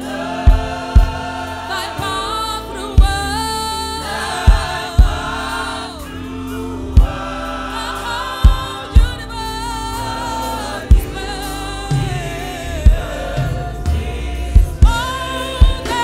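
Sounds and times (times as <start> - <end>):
deep low thumping beat: 0.0 - 1.5, 2.9 - 3.6, 4.4 - 6.1, 6.8 - 10.2, 10.8 - 16.0
choir singing gospel music: 0.0 - 16.0.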